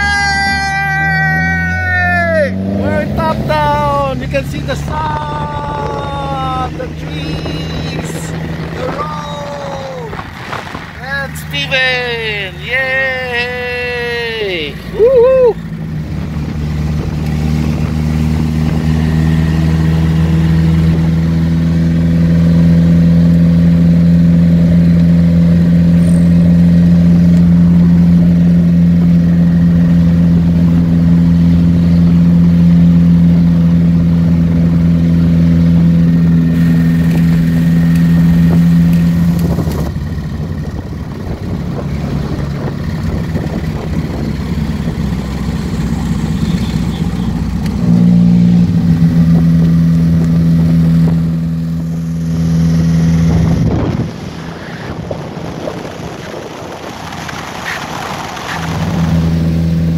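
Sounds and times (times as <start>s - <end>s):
high-pitched voice calling: 0.0s - 4.2s, 4.8s - 10.2s
car engine droning: 0.0s - 59.9s.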